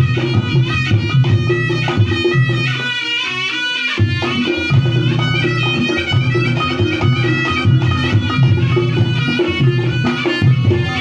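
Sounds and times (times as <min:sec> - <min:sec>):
drum and gongs beat: 0:00.0 - 0:11.0.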